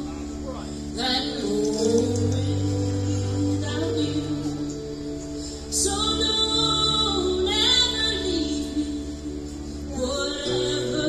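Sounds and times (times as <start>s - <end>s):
person singing: 0.8s - 11.0s.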